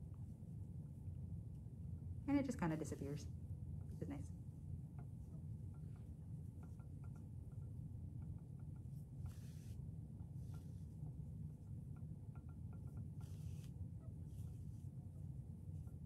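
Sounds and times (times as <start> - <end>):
steady low hum: 0.0 - 16.0
yarn swishing: 9.0 - 11.1, 13.2 - 16.0.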